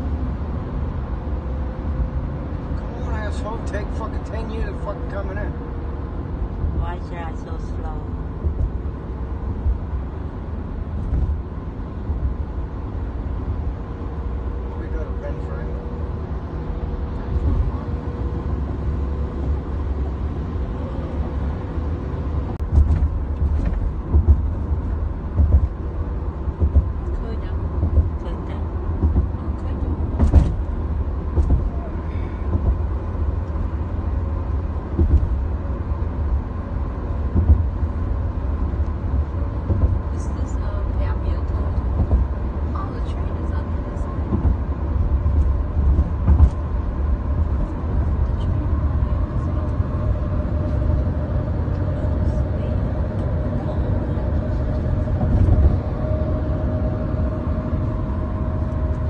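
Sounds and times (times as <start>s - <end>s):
road and engine rumble: 0.0s - 59.0s.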